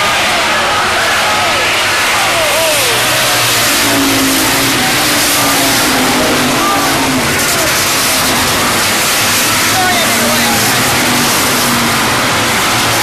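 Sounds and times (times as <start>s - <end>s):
race car engines: 0.0s - 13.0s.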